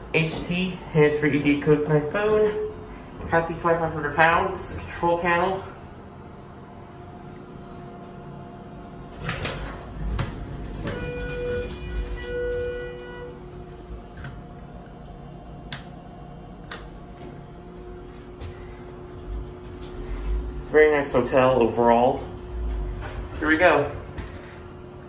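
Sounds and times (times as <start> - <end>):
elevator hum: 0.0 - 25.0
elevator doors opening: 9.1 - 14.6, 19.2 - 24.9
elevator chime notes: 10.7 - 13.9.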